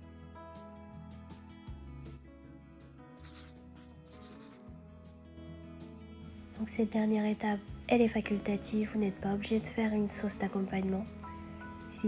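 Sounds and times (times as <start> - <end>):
soft background music: 0.0 - 12.0
brief hissing noises: 3.2 - 4.6.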